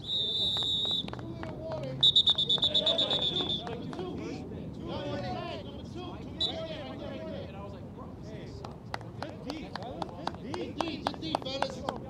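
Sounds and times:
referee's whistle blasts: 0.0 - 1.1, 2.0 - 3.7, 6.4 - 6.7
players shouting: 1.6 - 7.5.

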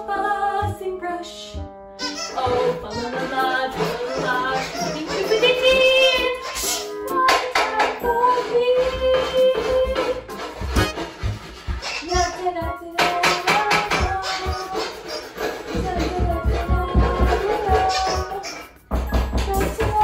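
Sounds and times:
woman singing: 0.0 - 6.4, 7.0 - 10.3, 12.0 - 20.0
recorded backing track: 0.0 - 20.0.

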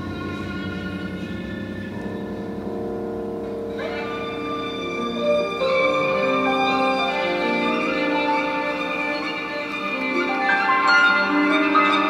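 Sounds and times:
grand piano: 0.0 - 12.0
violin: 3.4 - 12.0.

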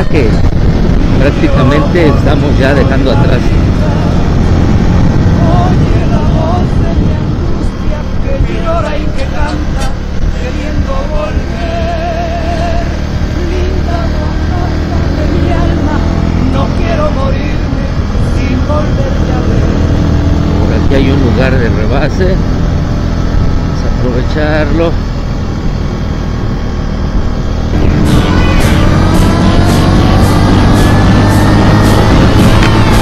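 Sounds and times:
motorcycle engine running: 0.0 - 33.0
wind rushing over microphone: 0.0 - 33.0.

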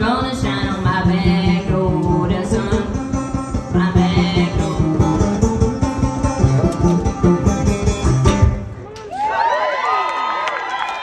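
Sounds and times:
bass line: 0.0 - 8.8
plucked banjo: 0.1 - 8.8.

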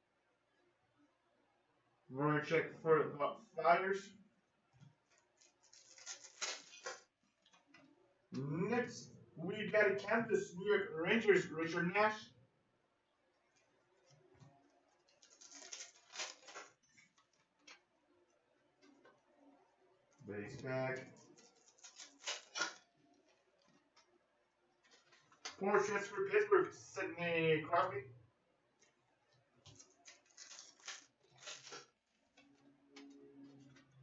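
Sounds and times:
foil wrapper crinkling and tearing: 5.0 - 7.6, 14.9 - 17.8, 20.9 - 24.0, 24.8 - 25.6, 29.6 - 32.4.

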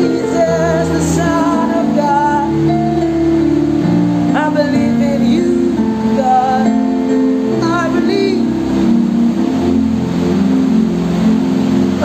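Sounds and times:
person singing: 0.0 - 3.2, 4.3 - 10.0
held instrumental chords: 0.0 - 12.0.

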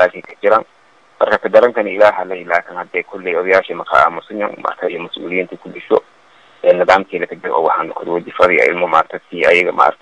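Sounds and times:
man talking: 0.0 - 0.6, 1.2 - 6.0, 6.6 - 10.0.

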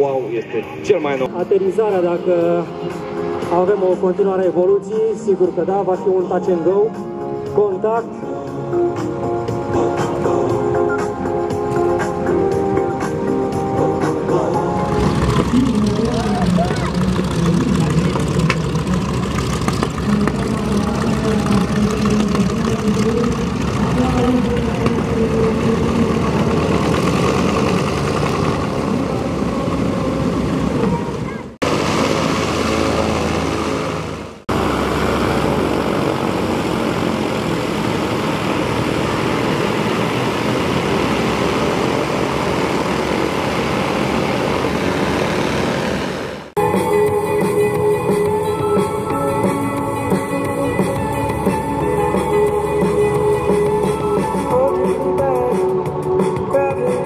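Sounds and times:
piston aircraft engines running: 0.0 - 57.0.

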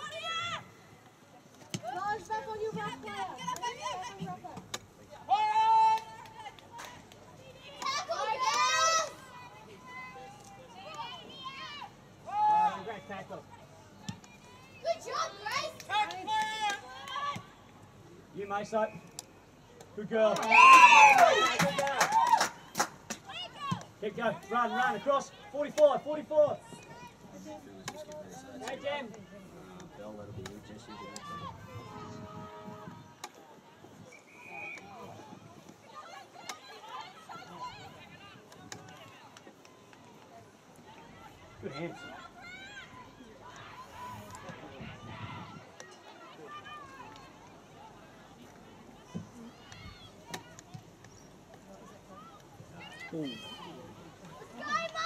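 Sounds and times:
spectators shouting: 20.3 - 23.9.

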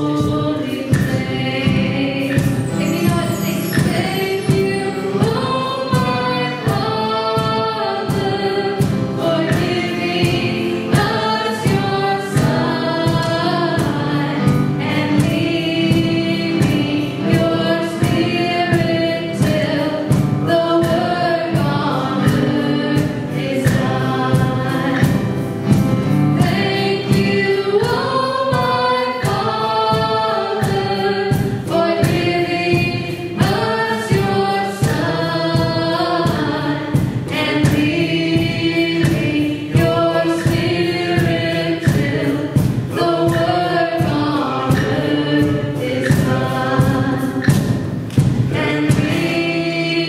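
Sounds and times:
woman singing lead: 0.0 - 25.5, 26.4 - 50.0
backing voices singing: 0.0 - 50.0
piano: 0.0 - 50.0
strummed guitar: 0.0 - 50.0.

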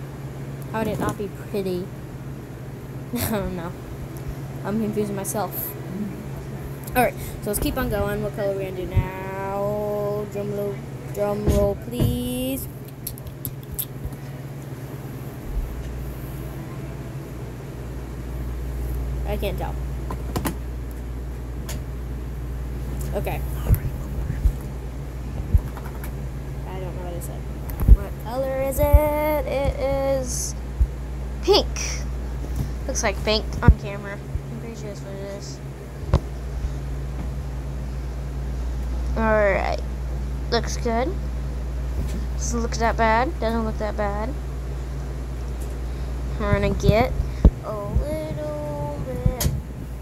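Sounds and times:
electric fan humming: 0.0 - 50.0
deep rumble: 0.7 - 31.4, 44.8 - 50.0.

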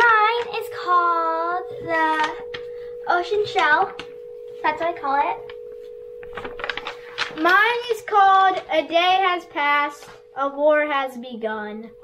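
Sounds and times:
girl singing: 0.0 - 4.0
faint steady tone: 0.0 - 12.0.

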